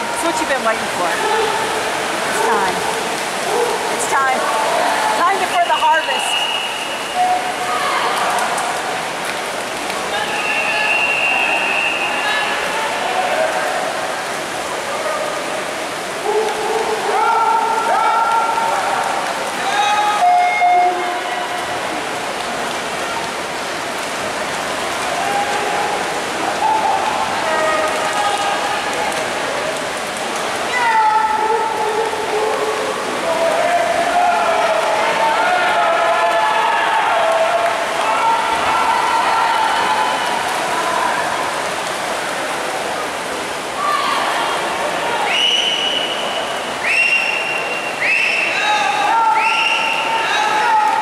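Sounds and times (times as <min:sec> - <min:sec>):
crowd noise: 0:00.0 - 0:51.0
swimmers splashing: 0:00.0 - 0:51.0
spectators cheering: 0:10.0 - 0:14.2, 0:24.9 - 0:29.3, 0:30.7 - 0:41.7, 0:43.8 - 0:51.0.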